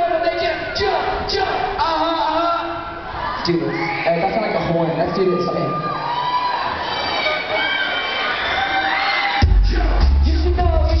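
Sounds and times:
crowd screaming and cheering: 2.6s - 11.0s.

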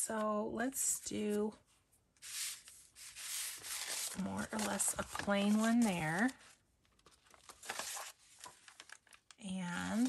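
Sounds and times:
paper sheets sliding and rubbing: 2.2s - 6.4s, 7.2s - 8.8s.

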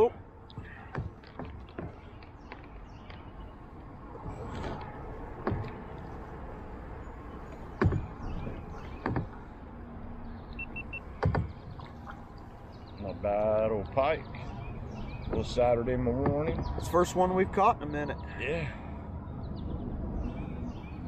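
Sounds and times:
sharp knocks: 0.6s - 2.1s, 5.4s - 5.8s, 7.8s - 9.4s, 11.2s - 12.0s, 15.2s - 16.8s.

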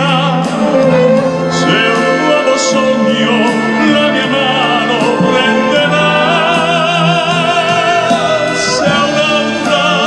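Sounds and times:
orchestra strings and harp: 0.0s - 10.0s.

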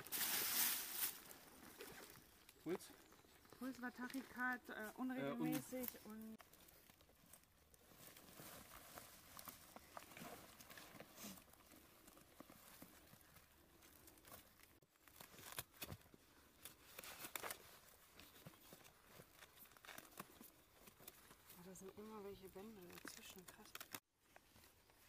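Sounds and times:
bandage and clothing rustling: 4.0s - 25.0s.

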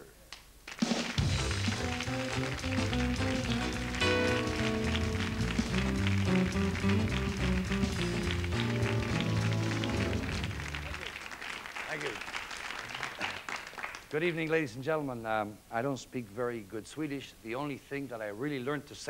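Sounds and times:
band music with bass line and beat: 0.8s - 11.1s.

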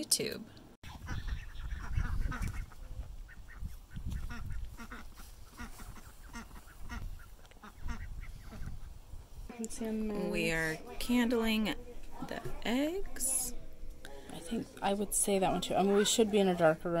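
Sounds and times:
chickens clucking: 0.9s - 9.0s.

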